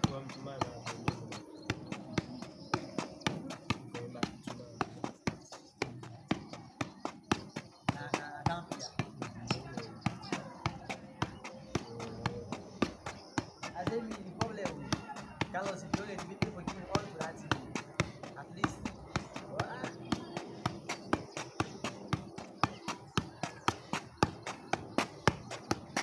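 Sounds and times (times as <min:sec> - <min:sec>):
ball taps on foot: 0:00.0 - 0:26.0.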